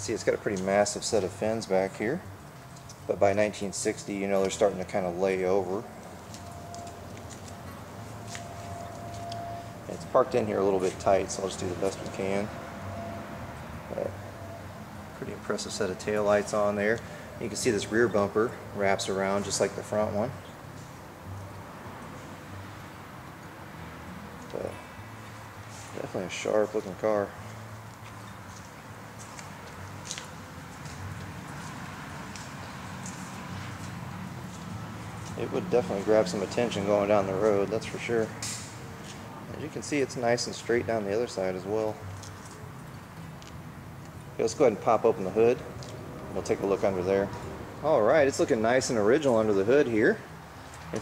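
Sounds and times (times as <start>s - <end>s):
footsteps on concrete: 6.7s - 9.4s, 27.5s - 36.2s, 39.0s - 39.3s
faint thin tone: 7.7s - 10.1s.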